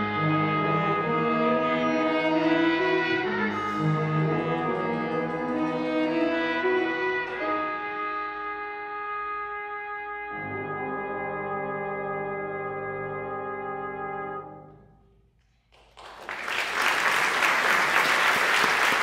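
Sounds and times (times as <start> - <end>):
big band playing long chords: 0.0 - 7.6
piano: 0.0 - 15.1.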